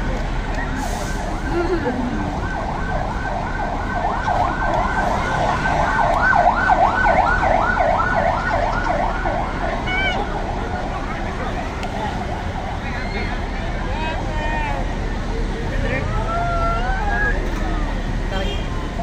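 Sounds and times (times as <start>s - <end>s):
emergency siren yelping: 0.5s - 11.0s.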